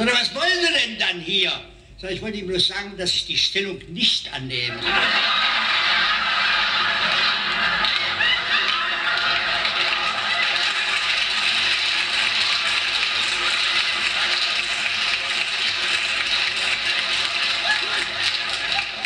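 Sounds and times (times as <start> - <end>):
audience laughing and applauding: 4.7 - 19.0.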